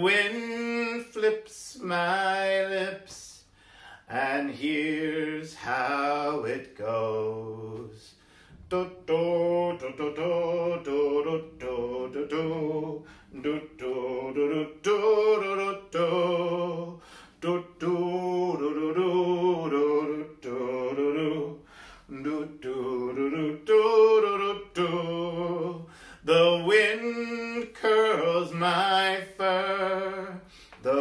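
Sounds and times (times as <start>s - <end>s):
man singing wordless syllables: 0.0s - 31.0s.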